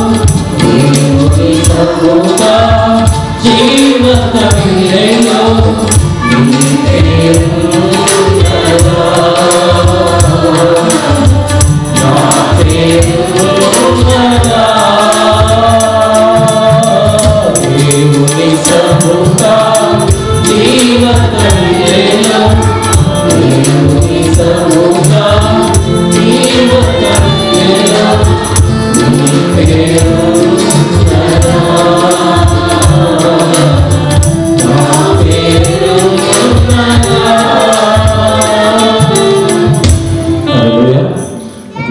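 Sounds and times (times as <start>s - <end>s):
tambourine: 0.0s - 40.4s
choir singing worship song: 0.0s - 41.3s
instrumental accompaniment: 0.0s - 41.9s.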